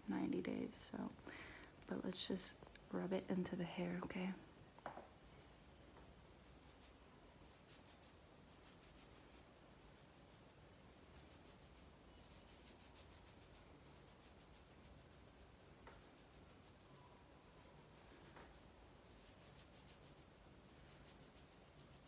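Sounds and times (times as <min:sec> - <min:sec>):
fingertips rubbing through hair: 0:06.0 - 0:22.0.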